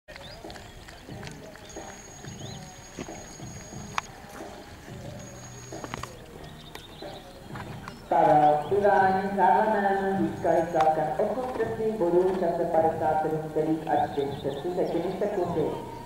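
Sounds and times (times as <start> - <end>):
distant background music: 0.1 - 16.0
voices: 0.1 - 16.0
thin high steady tone: 1.7 - 6.2.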